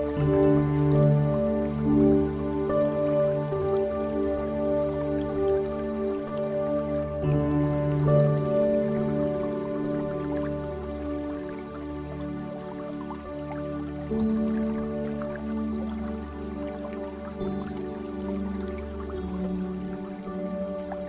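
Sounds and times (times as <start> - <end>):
ambient music of held chords: 0.0 - 21.0.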